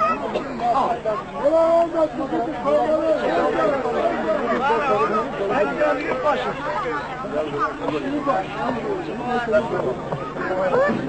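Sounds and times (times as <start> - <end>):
crowd chattering: 0.0 - 11.0.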